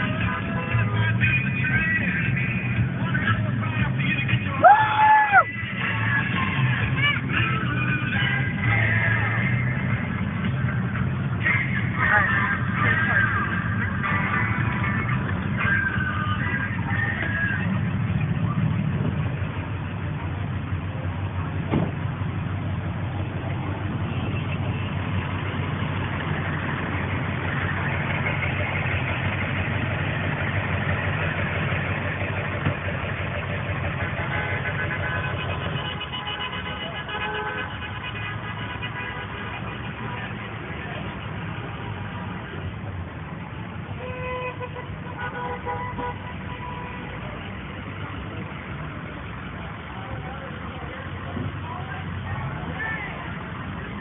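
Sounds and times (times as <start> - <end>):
truck engines running: 0.0 - 54.0
vehicle horns honking: 34.0 - 41.0, 44.0 - 47.3.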